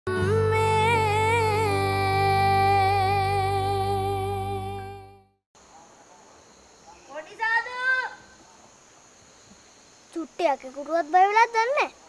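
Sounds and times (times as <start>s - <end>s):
crickets chirring: 5.6s - 12.0s.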